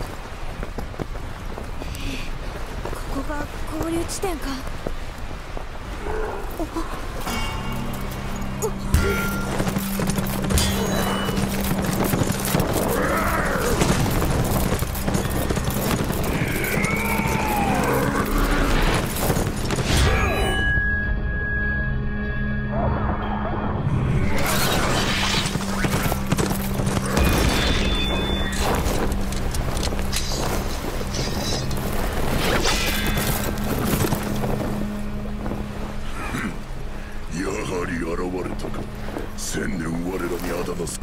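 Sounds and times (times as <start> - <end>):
horse hooves galloping: 0.0 - 7.1, 7.7 - 19.9, 25.3 - 36.0.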